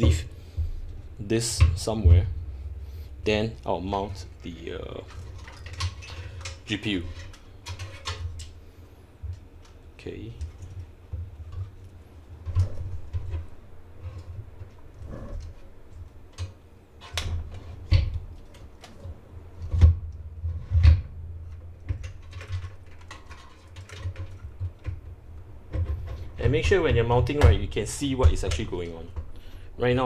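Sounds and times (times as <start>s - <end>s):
low steady hum: 0.0s - 30.0s
clicks knocks and scrapes of parts: 4.4s - 8.6s, 9.2s - 29.5s.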